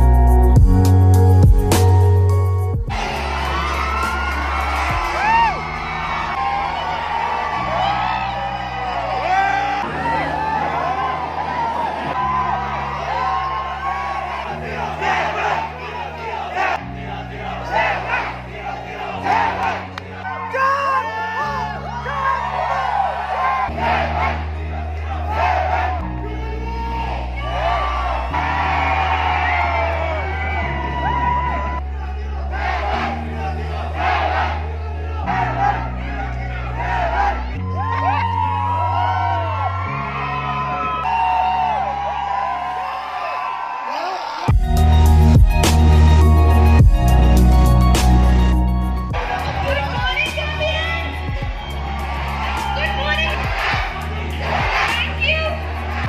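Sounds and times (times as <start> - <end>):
music over sound system: 0.0 - 12.0, 44.5 - 56.0
audience cheering and whooping: 2.9 - 44.6, 49.1 - 56.0
dance music with heavy bass: 44.5 - 56.0.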